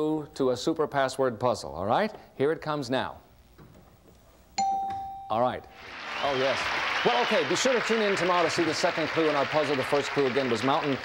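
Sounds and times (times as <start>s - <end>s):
electronic chime: 4.6s - 5.7s.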